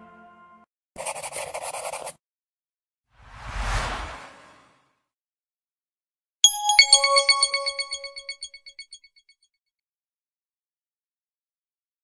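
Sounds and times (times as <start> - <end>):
electronic chime jingle: 6.4 - 9.0.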